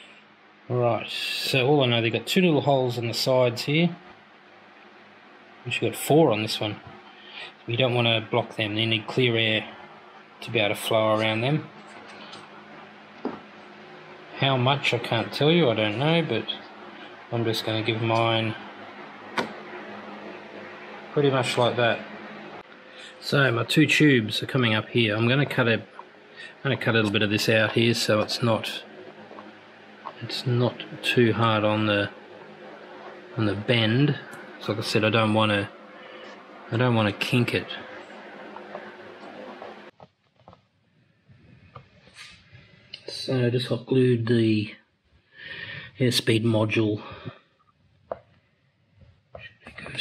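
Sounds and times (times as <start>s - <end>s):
steady buzz: 0.0s - 39.9s
steady low hum: 0.0s - 40.0s, 41.0s - 50.0s.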